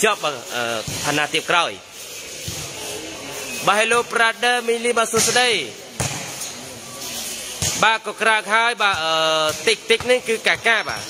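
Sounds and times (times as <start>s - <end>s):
volleyball impact: 0.7s - 1.4s, 2.4s - 2.8s, 5.1s - 6.6s, 7.5s - 8.0s, 8.8s - 11.0s.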